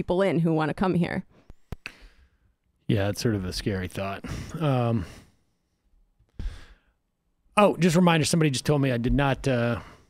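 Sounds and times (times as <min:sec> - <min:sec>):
man breathing or sighing: 0:06.4 - 0:06.9.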